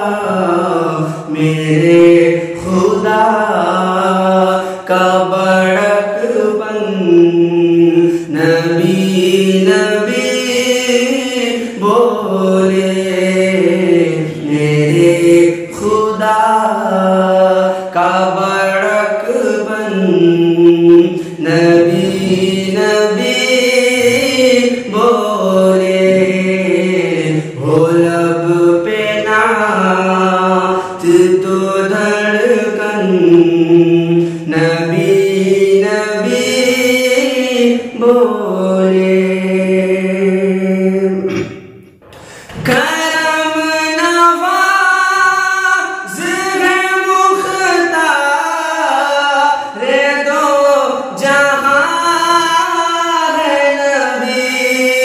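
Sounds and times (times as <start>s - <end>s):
man singing devotional song: 0.0s - 55.0s.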